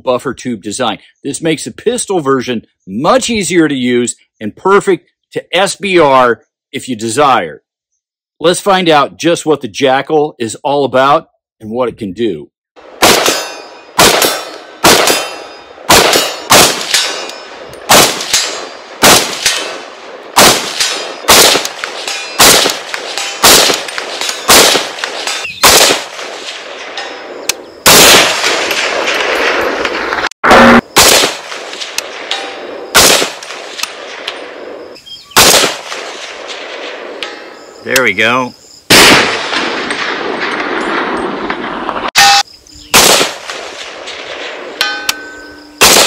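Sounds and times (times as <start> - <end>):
gunshots with ringing echo: 12.8 - 37.8, 38.9 - 46.0.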